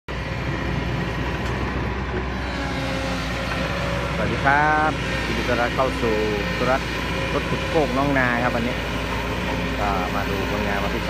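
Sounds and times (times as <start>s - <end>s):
excavator diesel engine running: 0.1s - 11.0s.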